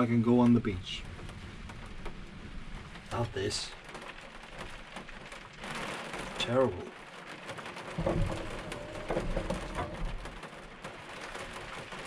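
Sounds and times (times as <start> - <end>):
rain on a vehicle roof: 0.0 - 12.0.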